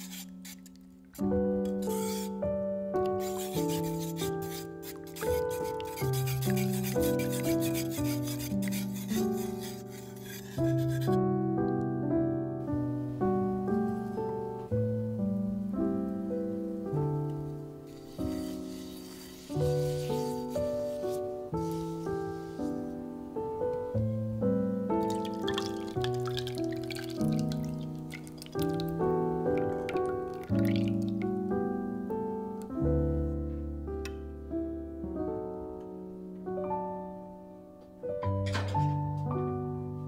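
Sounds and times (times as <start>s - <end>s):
whisk scraping a ceramic bowl: 0.0s - 0.8s, 1.8s - 2.3s, 3.2s - 11.2s, 18.0s - 21.2s, 25.1s - 28.9s
background music: 0.0s - 40.0s
batter pouring into frying pan: 25.0s - 28.9s, 29.6s - 31.1s
batter dripping and splattering: 25.0s - 29.0s, 29.6s - 31.1s.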